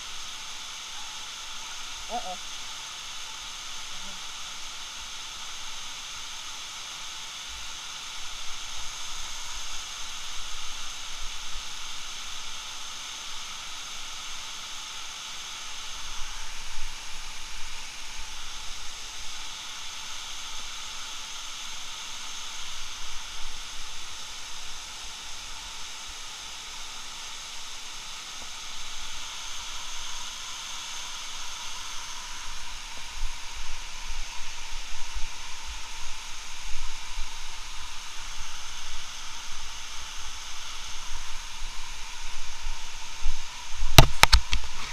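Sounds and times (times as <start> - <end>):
waterfall crashing onto rock: 36.8 - 44.9.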